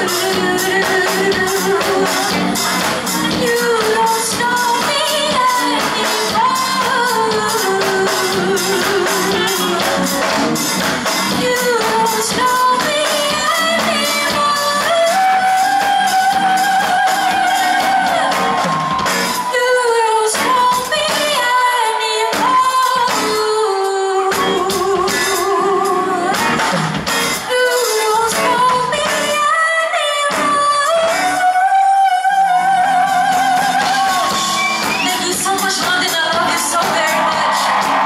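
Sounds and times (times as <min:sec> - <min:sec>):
drum kit: 0:00.0 - 0:29.6, 0:30.2 - 0:38.0
band playing: 0:00.0 - 0:38.0
woman singing into a microphone: 0:00.0 - 0:38.0.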